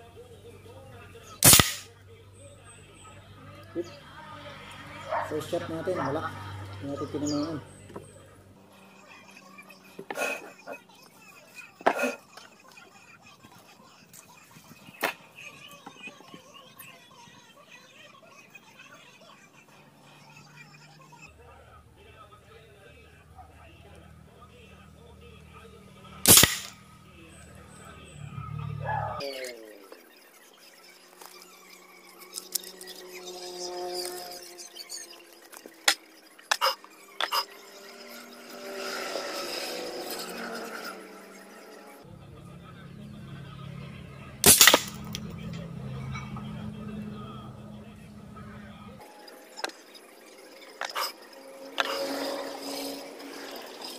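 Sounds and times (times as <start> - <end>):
toy gun shots: 1.4 - 1.9, 26.2 - 26.8, 44.4 - 45.2.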